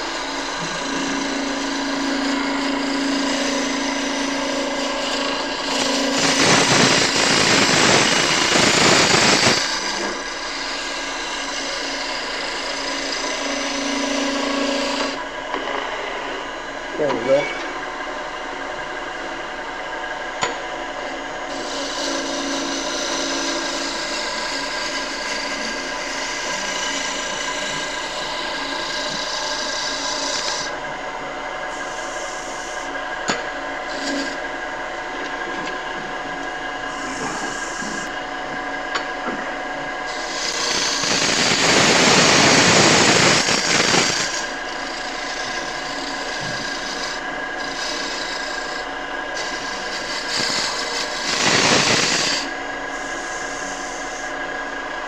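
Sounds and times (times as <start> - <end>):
turning tool scraping wood: 0.0 - 15.5, 21.5 - 54.5
wood lathe humming: 0.0 - 55.0.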